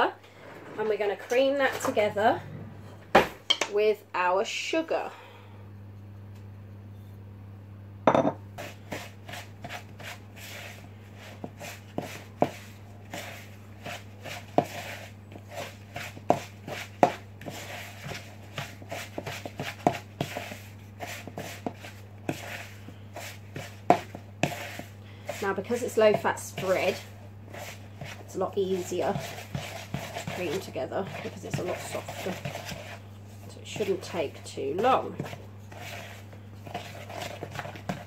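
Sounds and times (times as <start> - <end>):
steady low hum: 0.0 - 38.0
wooden spoon scraping plastic bowl: 0.3 - 3.1, 8.6 - 38.0.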